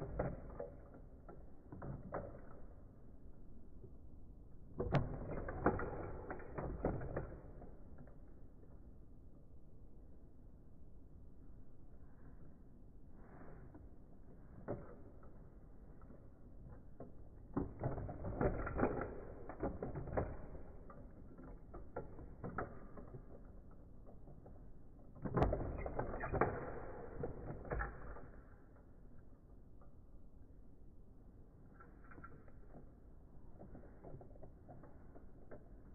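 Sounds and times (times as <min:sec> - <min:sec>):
plastic toy parts clicking: 0:16.0 - 0:30.0.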